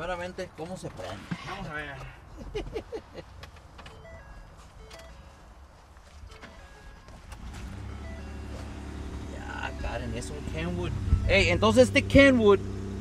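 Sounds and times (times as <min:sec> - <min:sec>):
truck engine rumbling: 0:00.9 - 0:13.0
dashboard chime beeps: 0:03.9 - 0:05.4, 0:06.3 - 0:12.2.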